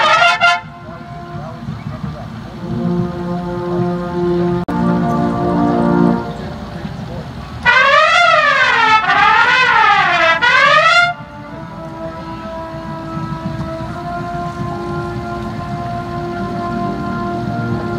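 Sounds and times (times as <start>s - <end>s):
faint held trumpet notes: 0.0s - 17.9s
trumpets gliding in unison: 0.0s - 17.9s.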